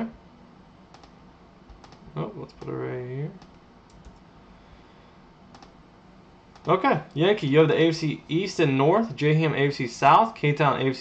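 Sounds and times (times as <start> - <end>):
computer keyboard clicks: 0.9 - 2.8, 3.4 - 4.2, 5.5 - 5.8, 6.5 - 6.7.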